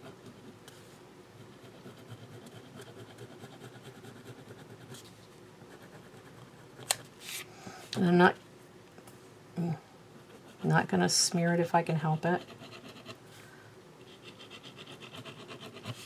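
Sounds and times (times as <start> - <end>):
pen scratching on paper: 1.4 - 5.0.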